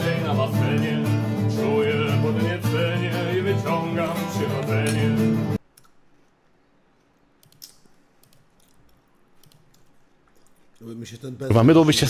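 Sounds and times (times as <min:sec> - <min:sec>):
man singing: 0:00.0 - 0:05.6
nylon-string guitar: 0:00.0 - 0:05.6.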